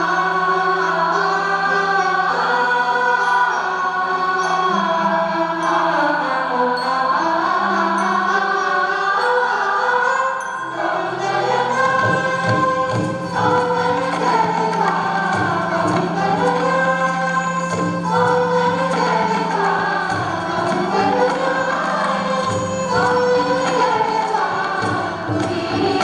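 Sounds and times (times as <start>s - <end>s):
chorus singing in unison: 0.0s - 26.0s
sitars and violins: 0.0s - 26.0s
drum strokes: 11.2s - 26.0s.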